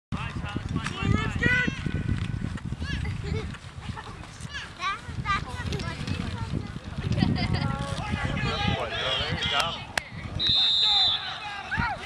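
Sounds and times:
wind rumble on microphone: 0:00.1 - 0:12.0
people shouting calls: 0:07.9 - 0:12.0.

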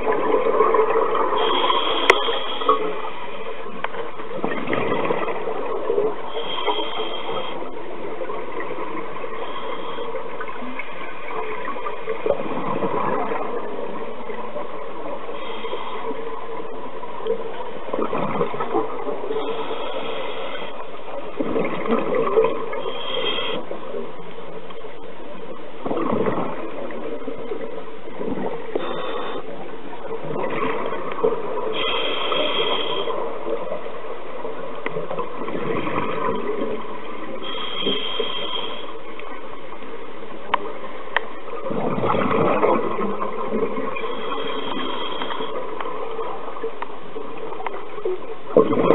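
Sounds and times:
steady hum: 0:00.0 - 0:48.9
underwater bubbles gurgling: 0:00.0 - 0:48.9
regulator hiss: 0:01.3 - 0:03.4, 0:22.8 - 0:23.8, 0:31.6 - 0:33.4, 0:37.4 - 0:39.1, 0:44.0 - 0:45.8.

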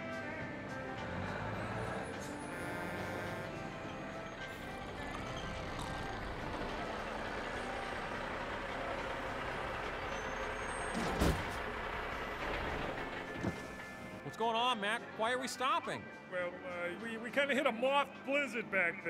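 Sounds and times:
background music: 0:00.0 - 0:11.0, 0:11.7 - 0:19.0
diesel trucks running: 0:00.0 - 0:14.3.

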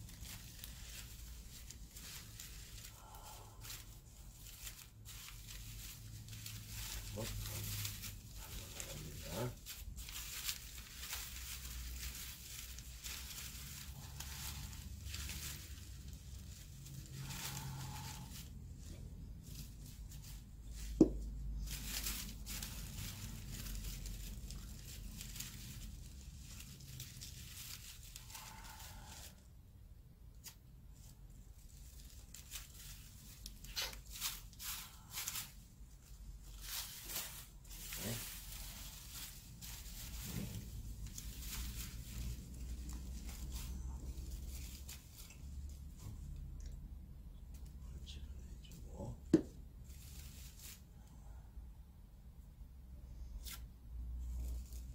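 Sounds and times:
paper rustling and crinkling: 0:00.0 - 0:29.5, 0:30.3 - 0:46.7, 0:48.7 - 0:51.4, 0:54.2 - 0:54.9.

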